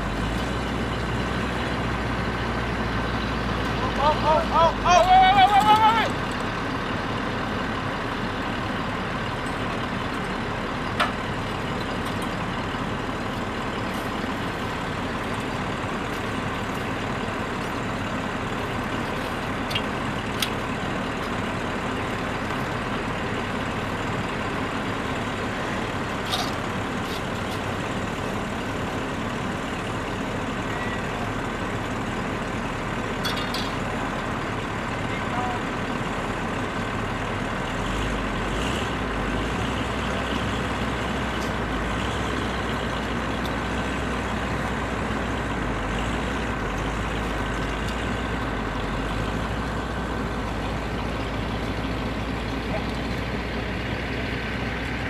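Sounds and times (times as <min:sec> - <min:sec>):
truck engine running: 0:00.0 - 0:55.0.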